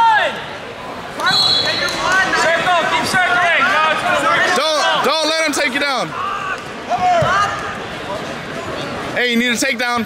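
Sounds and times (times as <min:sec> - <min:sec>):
people shouting: 0:01.2 - 0:07.8.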